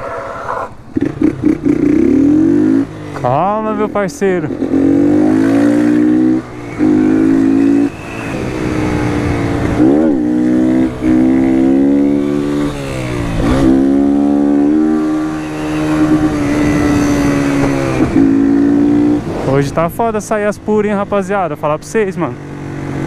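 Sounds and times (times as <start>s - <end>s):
motorcycle engine revving: 0.0s - 23.0s.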